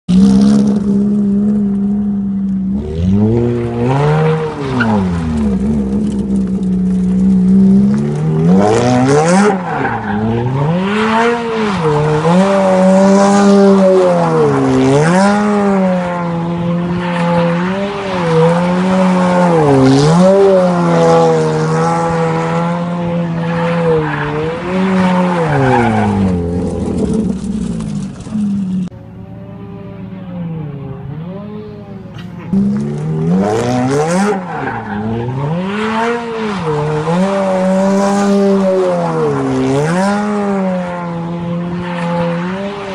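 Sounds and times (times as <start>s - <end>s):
car engine revving: 0.1s - 42.9s.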